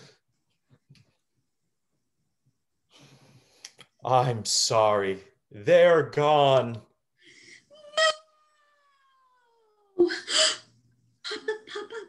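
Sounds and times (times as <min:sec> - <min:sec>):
woman wailing cry: 0:07.7 - 0:09.2.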